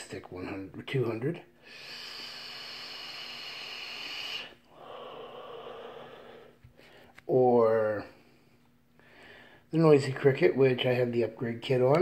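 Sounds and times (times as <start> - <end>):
person exhaling breath: 1.6 - 7.2
airflow hissing through e-cigarette: 1.8 - 6.5.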